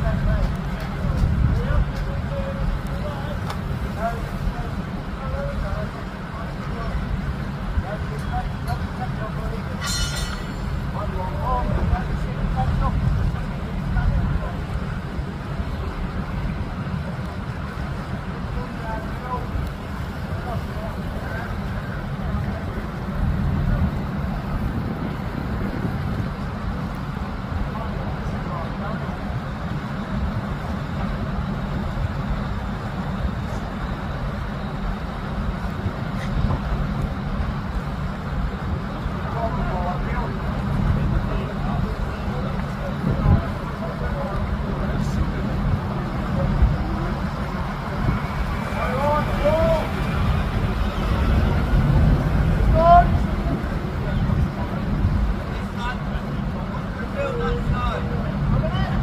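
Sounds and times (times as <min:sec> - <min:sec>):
engine running low rumble: 0:00.0 - 0:59.0
faint distant voices: 0:00.0 - 0:59.0.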